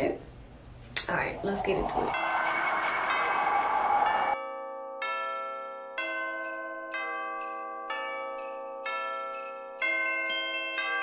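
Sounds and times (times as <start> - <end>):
festive bell music: 2.1 - 11.0.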